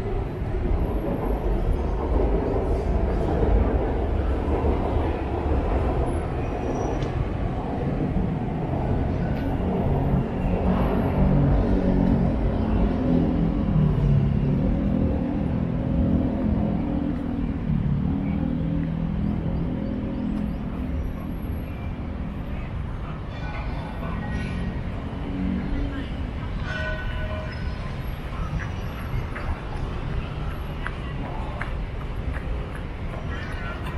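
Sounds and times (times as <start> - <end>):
road traffic rumble: 0.0 - 33.9.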